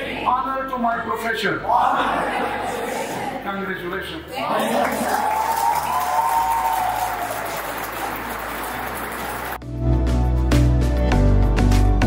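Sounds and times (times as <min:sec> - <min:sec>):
audience applauding: 0:04.5 - 0:09.6
background music: 0:06.8 - 0:12.0.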